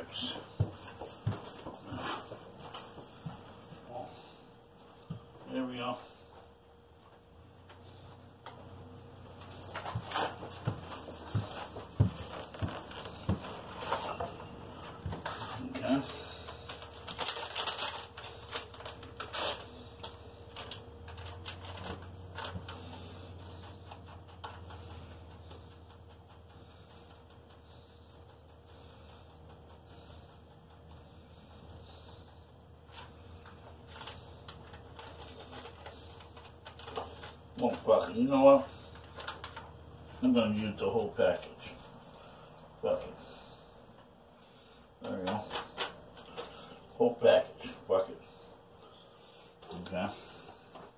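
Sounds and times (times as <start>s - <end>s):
faint low hum: 0.0s - 50.9s.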